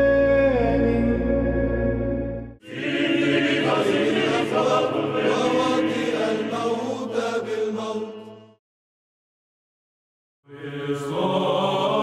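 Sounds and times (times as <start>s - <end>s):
man singing church chant: 0.0s - 1.6s.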